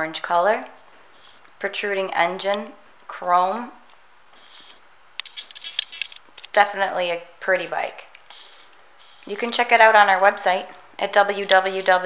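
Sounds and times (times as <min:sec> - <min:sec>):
small sharp clicks and ticks: 0:04.6 - 0:06.6.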